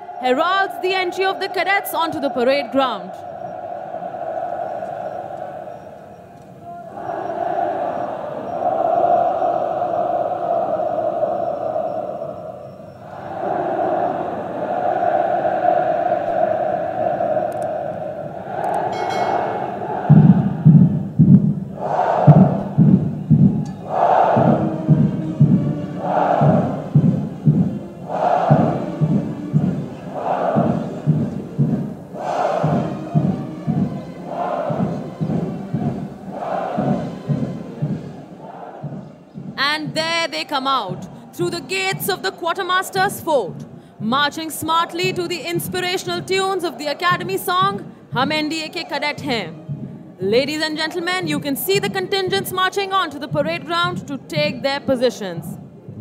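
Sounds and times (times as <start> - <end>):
marching drum beat: 18.2 - 56.0.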